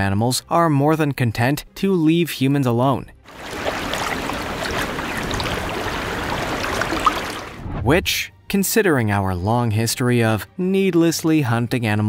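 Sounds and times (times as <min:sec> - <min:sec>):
water rushing and splashing: 0:03.3 - 0:07.7.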